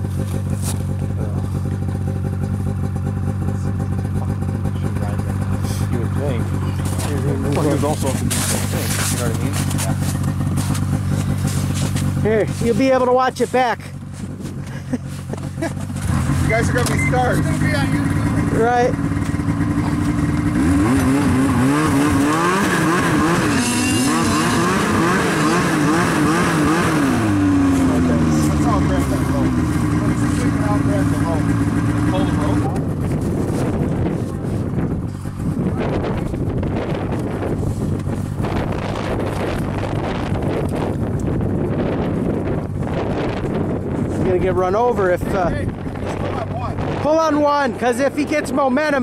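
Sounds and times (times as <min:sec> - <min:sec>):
snowmobile engine revving: 0:00.0 - 0:13.8, 0:14.4 - 0:49.0
wind noise on microphone: 0:32.4 - 0:48.4.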